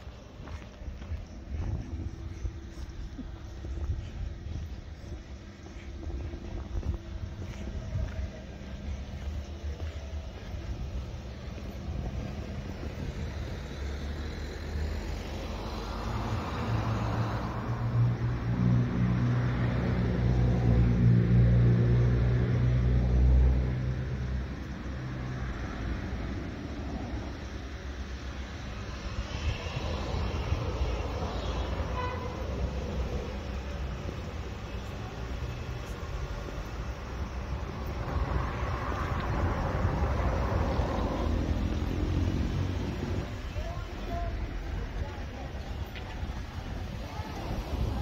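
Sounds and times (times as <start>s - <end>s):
motor vehicle driving past: 28.8s - 43.8s.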